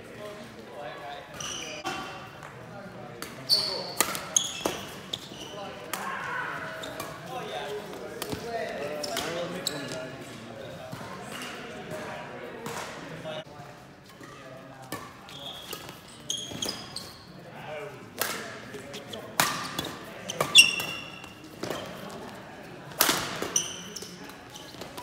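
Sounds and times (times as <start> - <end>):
shoes squeaking on floor: 1.1 - 2.3, 3.4 - 5.8, 6.7 - 10.1, 15.2 - 17.4, 18.8 - 22.4, 23.2 - 25.0.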